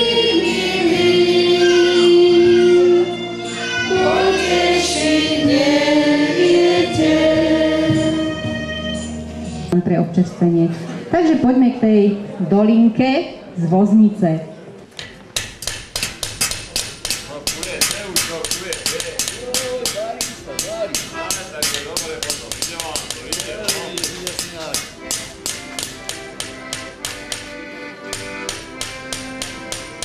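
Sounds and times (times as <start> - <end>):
voices singing: 0.0 - 9.1
hammers peening metal blades: 15.0 - 27.5, 28.1 - 30.0.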